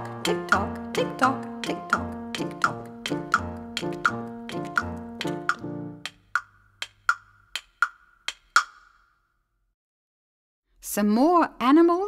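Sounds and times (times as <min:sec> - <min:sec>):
wood block tick-tock: 0:00.2 - 0:09.0.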